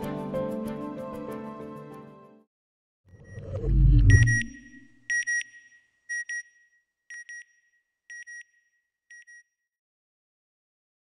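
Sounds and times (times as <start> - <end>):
low whoosh: 3.2 - 4.8
short high electronic beeps: 3.2 - 5.7.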